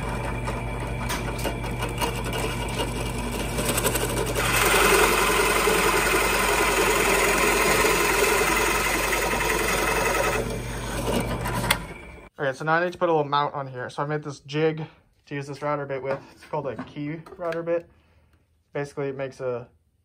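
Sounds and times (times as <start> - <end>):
drill press boring into wood: 0.0 - 12.3
motor hum: 0.0 - 12.3.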